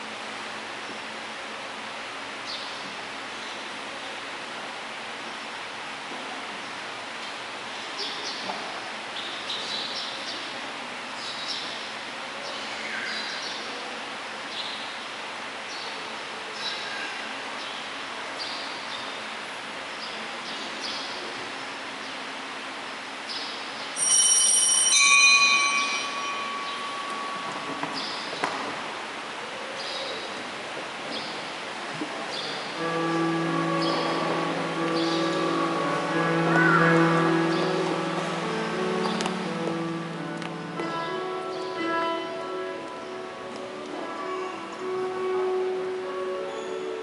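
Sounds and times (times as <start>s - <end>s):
bright bell ringing: 24.0s - 28.8s
hymn with long held notes: 24.0s - 30.1s, 32.6s - 47.0s.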